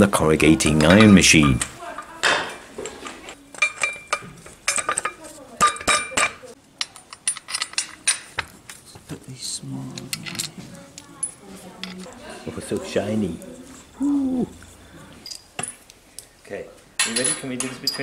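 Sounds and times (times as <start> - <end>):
steel parts clinking: 0.5 - 2.6, 3.3 - 8.8, 9.9 - 13.7, 15.2 - 16.3, 17.0 - 18.0.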